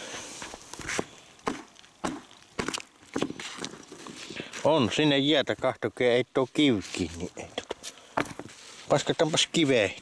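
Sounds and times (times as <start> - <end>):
boot footsteps crunching on ice: 0.4 - 5.0.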